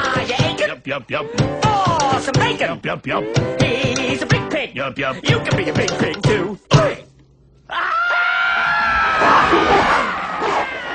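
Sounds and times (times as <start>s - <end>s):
long high-pitched scream: 7.7s - 9.6s.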